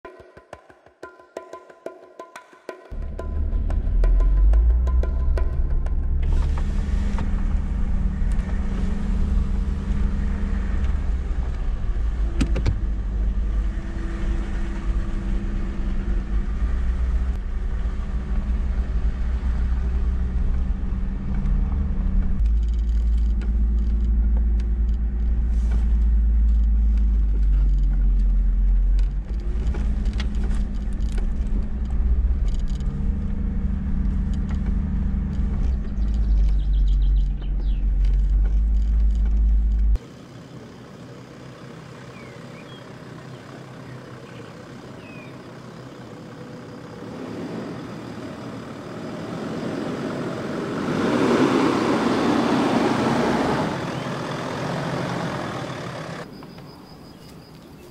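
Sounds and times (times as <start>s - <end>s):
knocks and rattles: 2.4s - 6.6s
vehicle engine deep drone: 2.9s - 57.9s.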